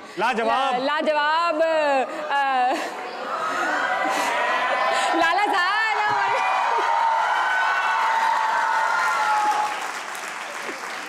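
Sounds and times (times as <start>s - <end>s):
audience applauding: 6.2s - 11.0s.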